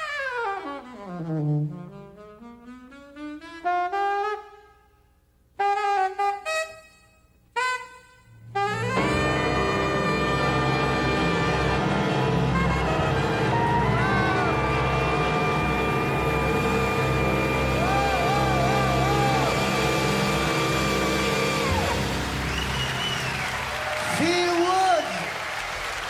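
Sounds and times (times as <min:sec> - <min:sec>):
jazz quartet holding chord: 0:08.4 - 0:22.8.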